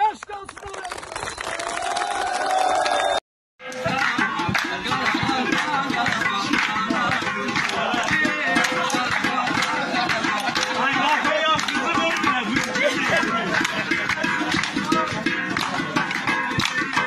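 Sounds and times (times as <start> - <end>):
handclaps: 0.0 - 17.0
drumming on metal pots: 3.6 - 17.0
men singing and shouting: 3.6 - 17.0.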